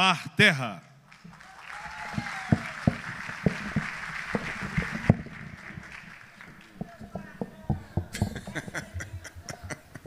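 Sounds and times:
audience applauding: 1.1s - 8.8s.

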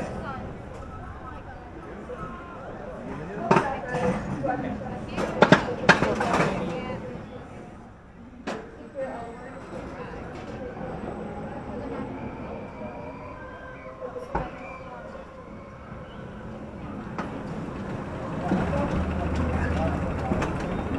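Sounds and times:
riders' voices: 0.0s - 8.0s, 9.1s - 20.9s
roller coaster train rolling: 0.0s - 20.9s
chain lift drone: 16.4s - 20.9s.

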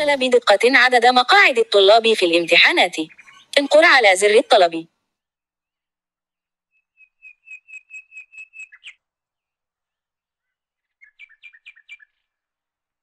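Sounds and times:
small bird chirping: 2.3s - 3.6s, 6.7s - 9.1s, 10.4s - 12.4s.

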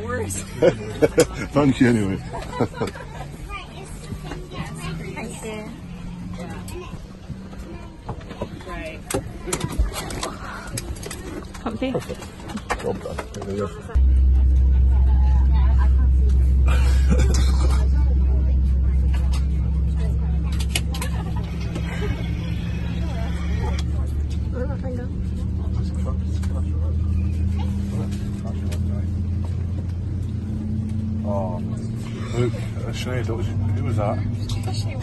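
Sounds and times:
airplane cabin drone: 0.0s - 35.0s
faint passenger voices: 0.0s - 35.0s.

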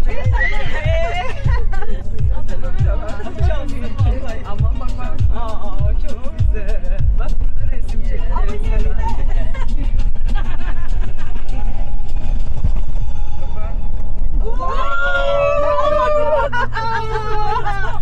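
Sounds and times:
people crying out: 0.0s - 1.6s, 14.4s - 18.0s
engine and tyres rumbling: 0.0s - 18.0s
passengers chatting: 0.0s - 18.0s.

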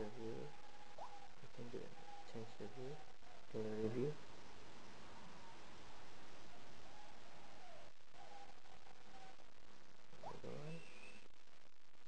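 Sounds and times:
faint wavering tones: 0.0s - 11.4s
background hiss: 0.0s - 12.0s.

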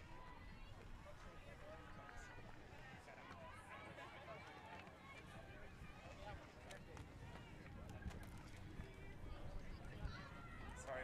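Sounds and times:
faint voices calling and chatting: 0.0s - 11.0s.

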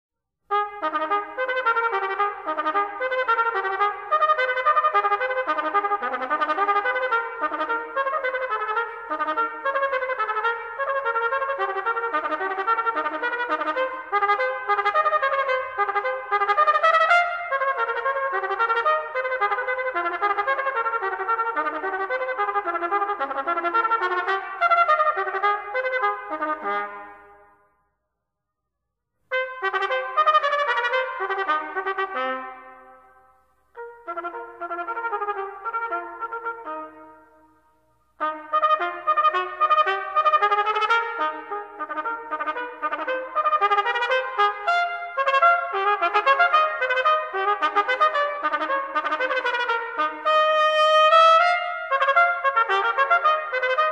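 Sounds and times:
trumpet playing fast staccato runs: 0.5s - 27.2s, 29.3s - 32.6s, 38.2s - 53.9s.

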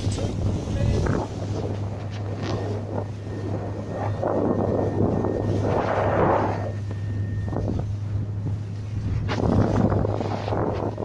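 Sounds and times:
speedboat motor droning: 0.0s - 11.0s
wind buffeting microphone: 0.0s - 11.0s.

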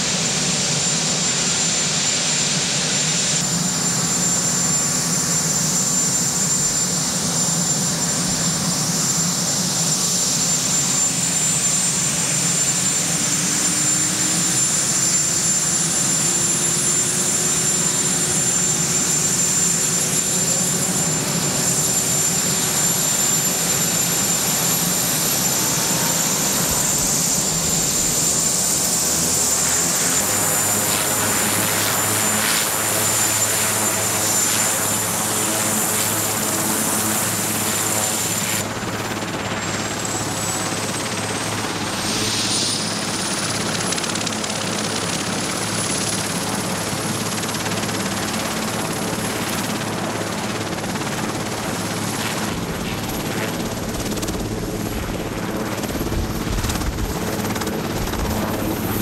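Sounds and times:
helicopter rotor turning: 0.0s - 59.0s
helicopter turbine whine rising: 0.0s - 59.0s.

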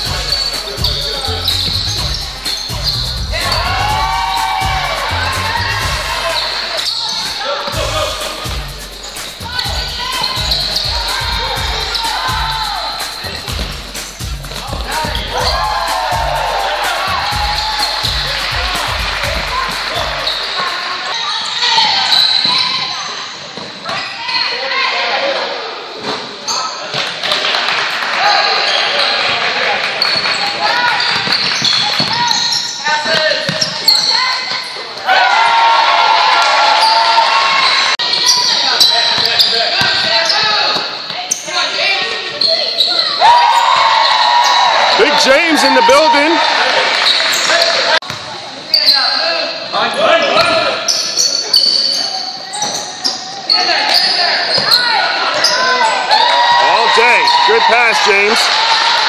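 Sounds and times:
voices calling out: 0.0s - 23.4s, 36.7s - 48.0s.

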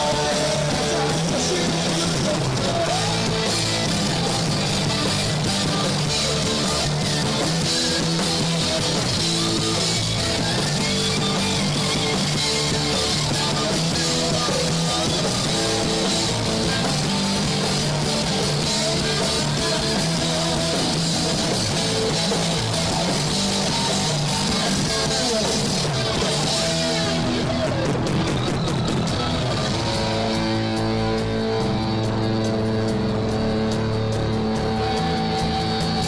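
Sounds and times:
live rock band: 0.0s - 36.0s.

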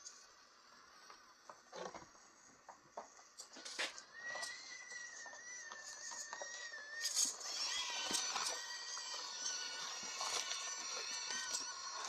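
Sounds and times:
small electric motor whining: 0.0s - 12.0s.

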